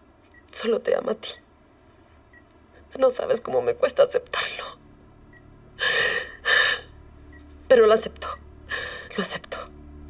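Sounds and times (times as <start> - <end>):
woman crying: 5.8 - 6.9.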